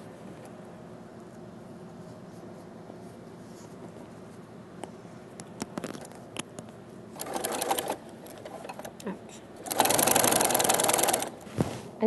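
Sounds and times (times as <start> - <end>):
electric sewing machine stitching: 7.2 - 8.9, 9.6 - 11.4.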